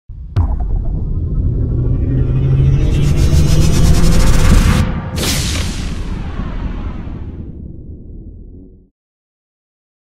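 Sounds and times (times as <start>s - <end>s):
sudden cinematic hit: 0.1s - 8.8s
deep rumble: 0.1s - 8.9s.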